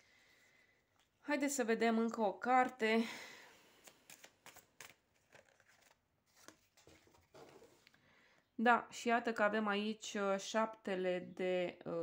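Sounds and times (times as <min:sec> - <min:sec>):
cards being shuffled by hand: 0:03.7 - 0:07.9.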